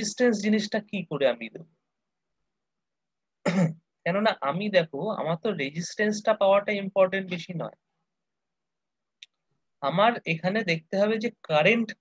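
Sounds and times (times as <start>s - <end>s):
person speaking: 0.0s - 1.8s, 4.0s - 7.9s, 9.2s - 12.0s
person clearing throat: 3.4s - 3.8s.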